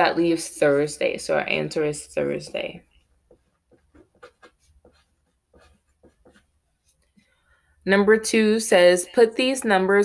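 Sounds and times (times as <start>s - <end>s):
pen writing on paper: 3.2s - 7.0s.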